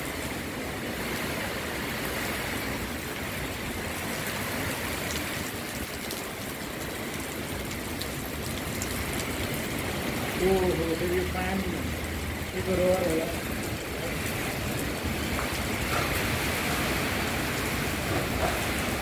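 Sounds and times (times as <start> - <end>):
heavy rain pouring: 0.0 - 19.0.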